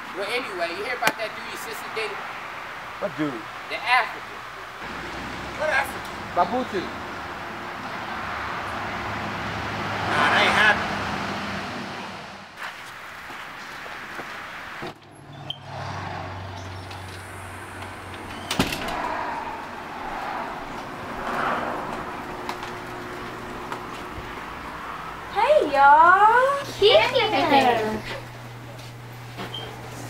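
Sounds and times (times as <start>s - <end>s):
steady background noise: 0.0s - 30.0s.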